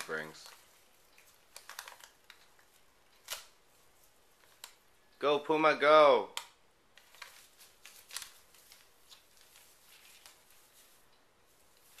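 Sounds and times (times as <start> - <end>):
paper crinkling and ripping: 0.0 - 4.8, 7.0 - 12.0.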